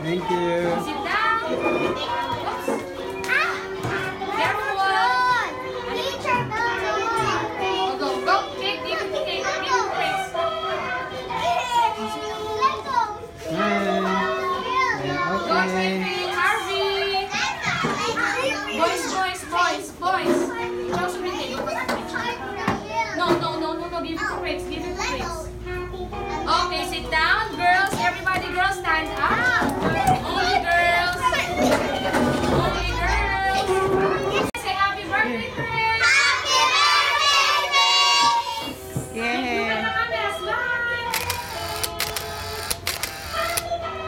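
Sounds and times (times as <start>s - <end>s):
young children chattering: 0.0s - 34.5s.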